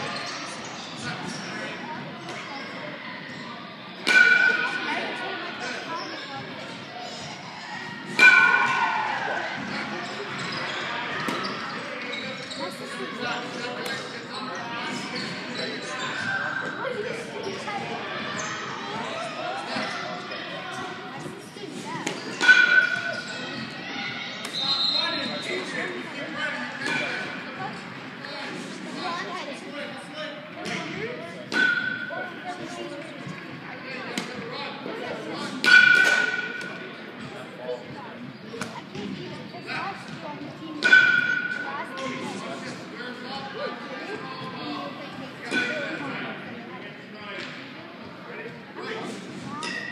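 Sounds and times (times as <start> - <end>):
baseball striking metal: 4.1 - 4.8, 8.2 - 8.8, 22.4 - 23.2, 35.6 - 36.8, 40.8 - 41.6.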